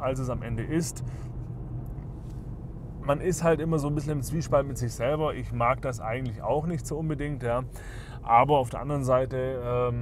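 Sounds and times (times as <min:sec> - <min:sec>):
low engine drone: 0:00.0 - 0:08.5
road noise: 0:00.0 - 0:10.0.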